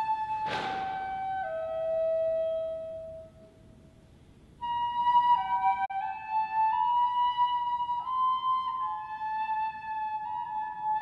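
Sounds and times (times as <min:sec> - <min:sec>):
flute holding long note: 0:00.0 - 0:03.6, 0:04.6 - 0:11.0.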